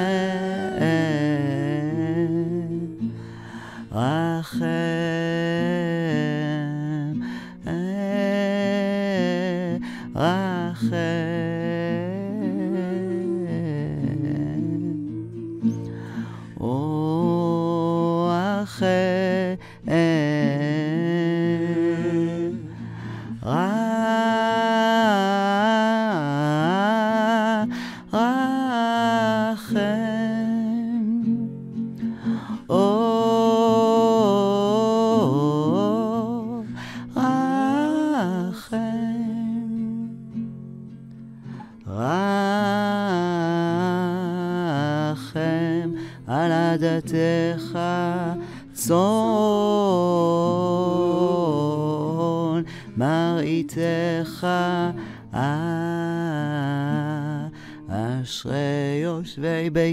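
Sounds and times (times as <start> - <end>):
man humming: 0.0 - 2.9, 20.9 - 22.8
acoustic guitar: 0.0 - 59.9.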